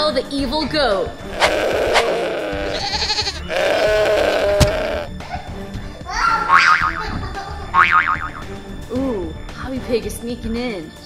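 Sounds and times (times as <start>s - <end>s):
upbeat background music: 0.0s - 11.0s
cartoon boing sound effect: 6.5s - 7.0s, 7.8s - 8.5s.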